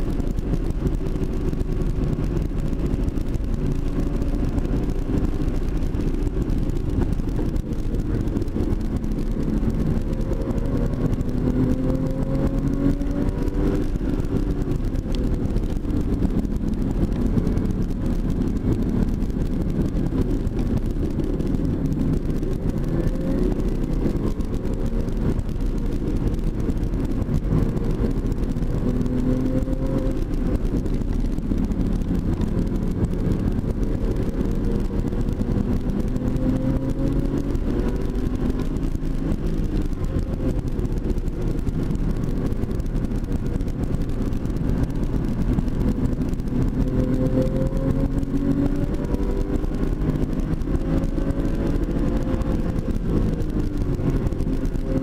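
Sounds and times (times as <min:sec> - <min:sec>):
car engine revving: 0:00.0 - 0:55.0
road and wind noise: 0:00.0 - 0:55.0.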